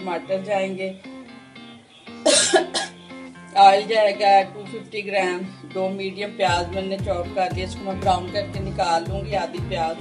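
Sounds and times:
acoustic guitar music: 0.0 - 10.0
person coughing: 2.2 - 3.0.

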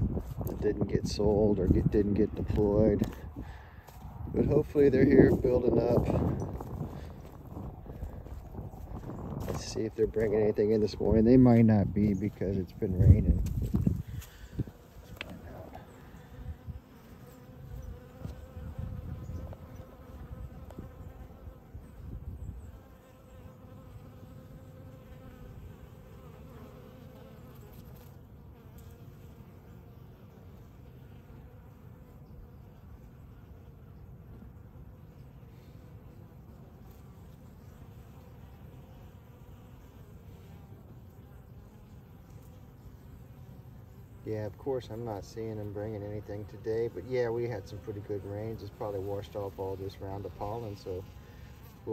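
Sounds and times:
honeybees buzzing: 0.0 - 51.9.

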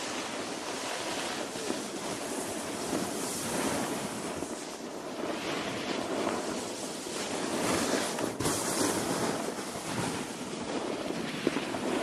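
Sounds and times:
snowboard sliding over snow: 0.0 - 12.0
wind rushing over microphone: 0.0 - 12.0.

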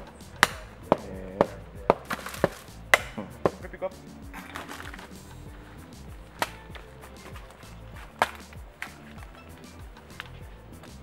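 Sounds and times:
background music: 0.0 - 11.0
machete chopping coconuts: 0.0 - 11.0.

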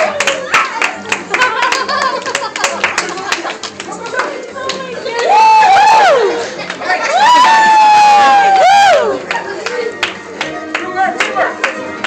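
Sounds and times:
hands clapping: 0.0 - 5.3, 6.6 - 12.0.

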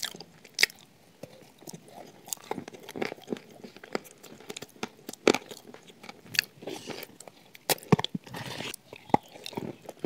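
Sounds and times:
chewing: 0.0 - 10.0.

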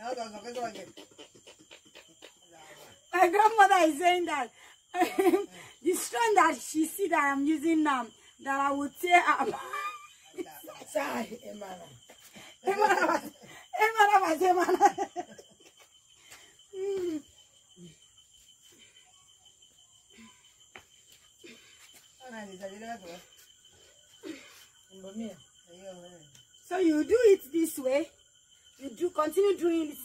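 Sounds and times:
people talking and laughing: 0.0 - 6.4, 9.2 - 17.2.

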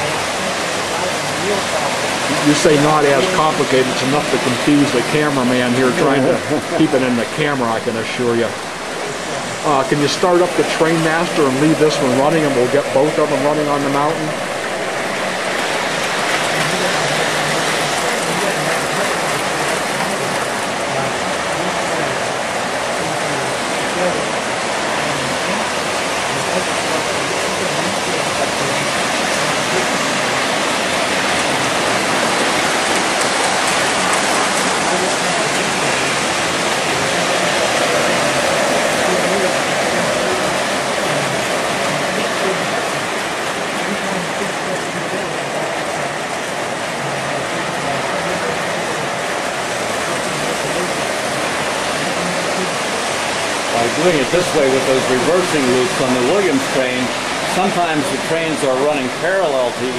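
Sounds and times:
model trains rumbling on track: 0.0 - 59.9.

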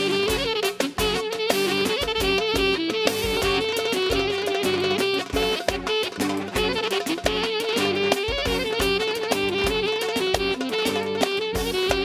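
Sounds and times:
instrumental band music: 0.0 - 12.0.

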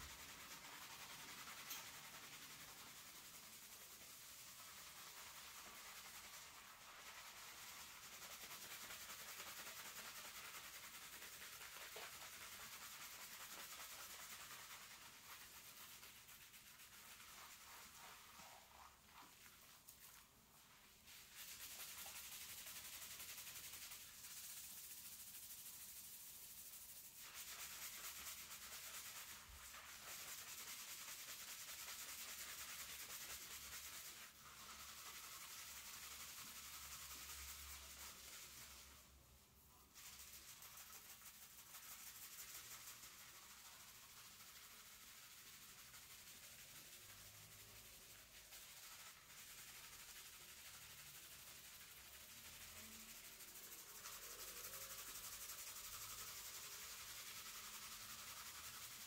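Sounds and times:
fingertips scrubbing lathered hair: 0.0 - 59.0.

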